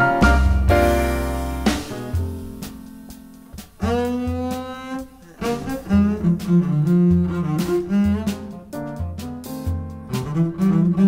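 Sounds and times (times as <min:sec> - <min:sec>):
double bass notes: 0:00.0 - 0:11.0
drums and cymbal strokes: 0:00.0 - 0:11.0
saxophone: 0:03.8 - 0:09.0.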